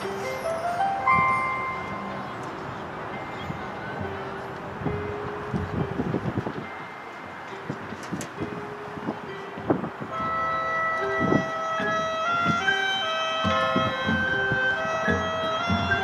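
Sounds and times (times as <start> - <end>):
high held chord: 0.0 - 2.5, 8.4 - 16.0
long held band tones: 10.1 - 16.0.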